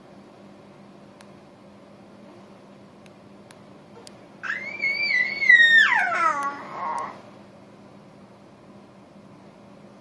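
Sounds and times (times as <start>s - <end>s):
baby squealing: 4.4s - 7.2s.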